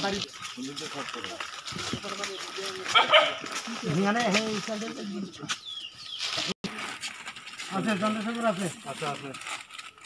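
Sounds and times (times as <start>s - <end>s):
people talking: 0.0s - 5.6s, 7.7s - 9.4s.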